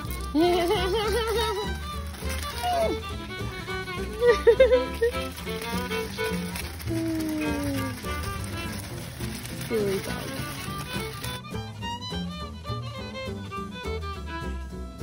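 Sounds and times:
fiddle music: 0.0 - 15.0.

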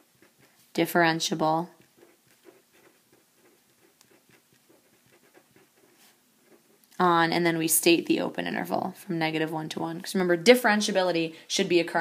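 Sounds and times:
marker scratching on paper: 0.0 - 6.8.

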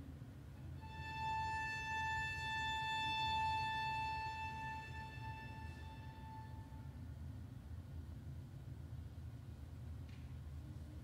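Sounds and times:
classical string duo: 0.6 - 6.4.

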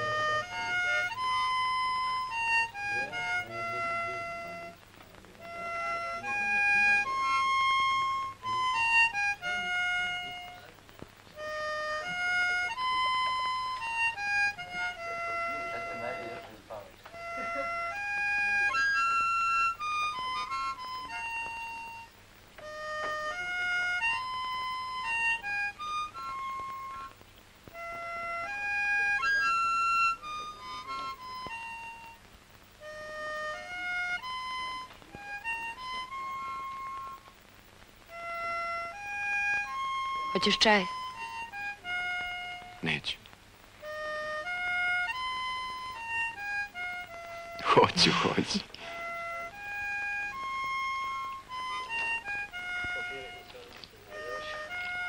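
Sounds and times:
harmonica melody: 0.0 - 10.8, 11.4 - 43.2, 43.8 - 55.0.

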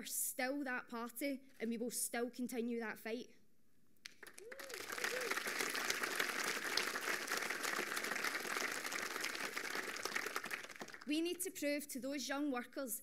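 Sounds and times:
audience applauding: 4.1 - 11.1.

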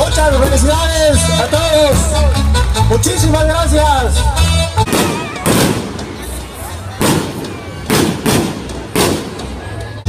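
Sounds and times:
fireworks bangs with echo: 4.8 - 9.9.

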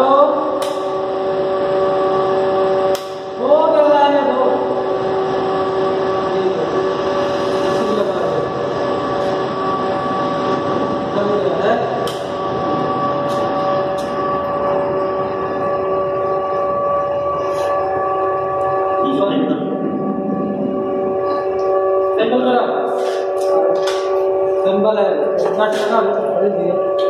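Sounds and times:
steady electrical hum: 0.0 - 27.0.

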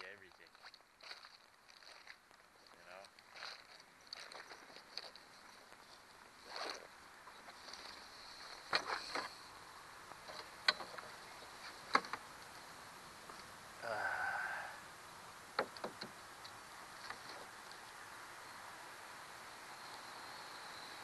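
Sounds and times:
faint steady hiss: 0.0 - 21.0.

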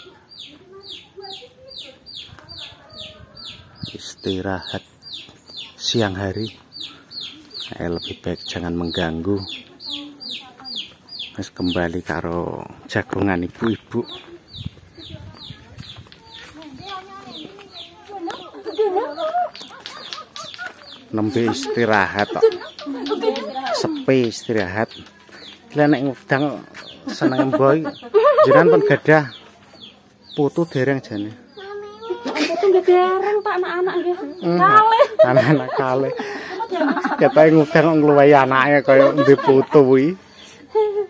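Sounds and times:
chickens clucking: 0.0 - 41.0.

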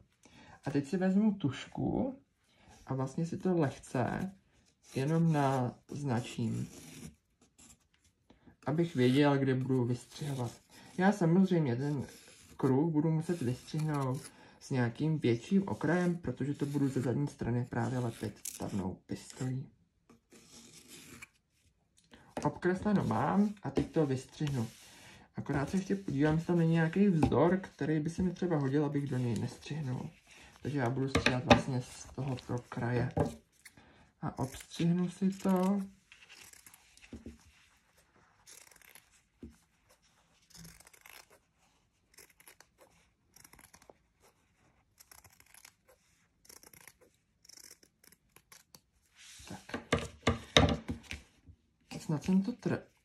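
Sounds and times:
scissors snipping fabric: 38.4 - 48.9.

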